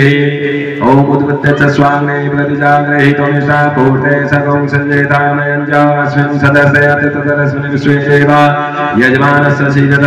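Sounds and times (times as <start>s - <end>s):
men chanting mantras: 0.0s - 10.0s.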